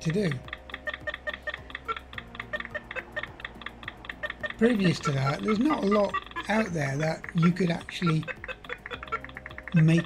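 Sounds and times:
fast computer clicks: 0.0 - 10.0.

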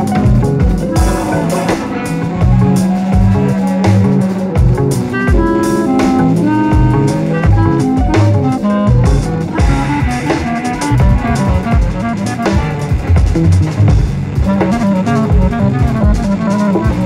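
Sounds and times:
drum kit groove: 0.0 - 17.0
melodic instruments holding notes: 0.0 - 17.0.

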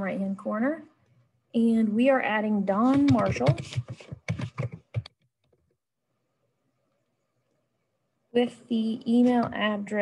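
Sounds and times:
computer keyboard typing: 2.8 - 5.2.

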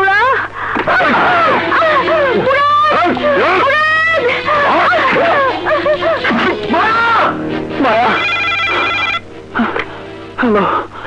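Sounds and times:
person speaking: 1.5 - 8.3
telephone ringing: 7.8 - 9.2.

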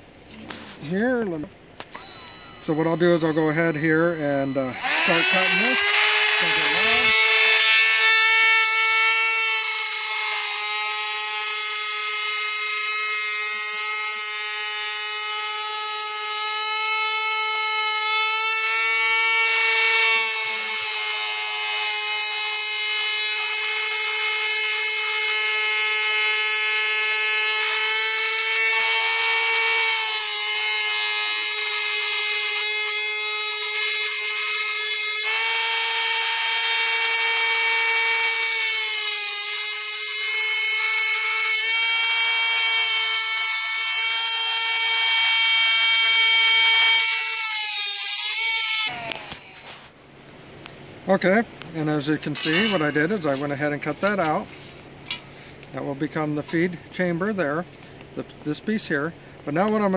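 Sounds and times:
rotary tool cutting metal: 1.9 - 49.8, 52.2 - 54.5.

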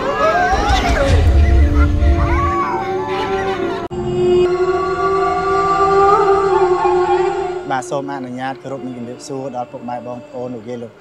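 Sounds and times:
wailing cry: 0.0 - 3.9.

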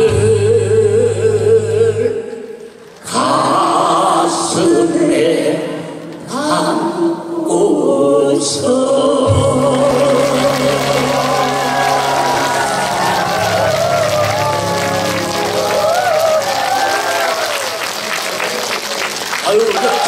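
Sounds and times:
backing music held chord: 8.7 - 17.4
large audience applauding: 9.7 - 20.0.

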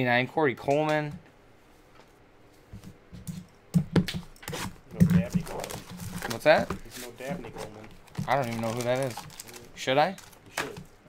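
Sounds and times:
trading cards and packaging rustling: 2.8 - 11.0.

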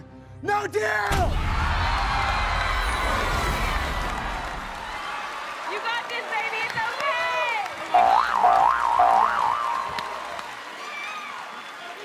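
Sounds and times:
comedic boing sound effect: 8.0 - 9.8.

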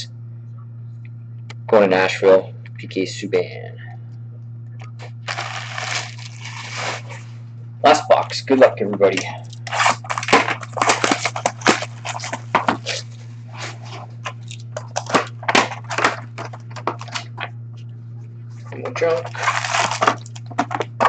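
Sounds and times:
steady low hum: 0.0 - 21.0
plastic shrink-wrap crinkling: 5.0 - 7.3, 9.4 - 17.4, 19.2 - 21.0.

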